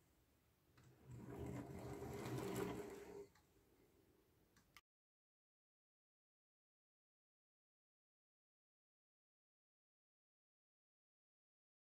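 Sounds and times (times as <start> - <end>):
toy truck wheels rolling on wood: 0.9 - 3.4.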